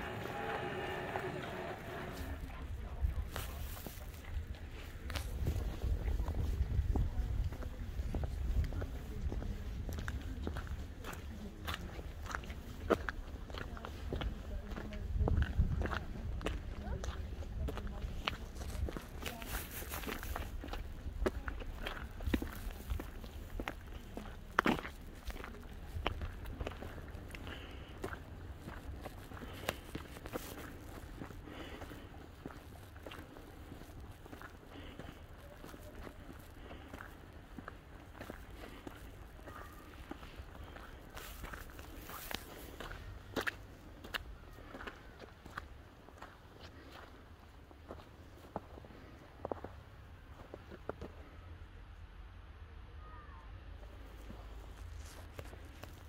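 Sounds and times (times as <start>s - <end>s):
footsteps on slushy road: 0.0s - 51.4s, 53.8s - 56.0s.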